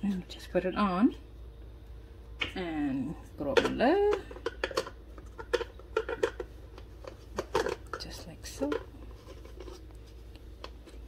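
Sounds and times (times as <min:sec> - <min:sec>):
steady low hum: 0:00.0 - 0:11.0
plastic parts rubbing: 0:03.7 - 0:11.0.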